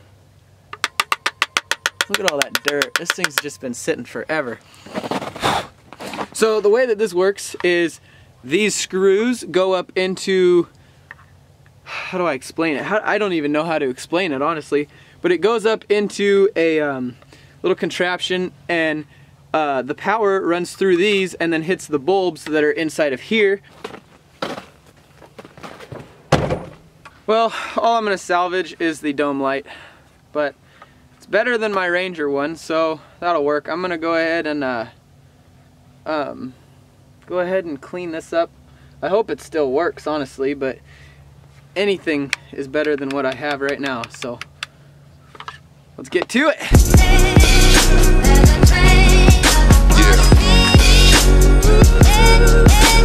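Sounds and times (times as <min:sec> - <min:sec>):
screwdriver clicking on plastic: 0:00.8 - 0:03.4
faint scuffs and knocks: 0:23.6 - 0:26.8.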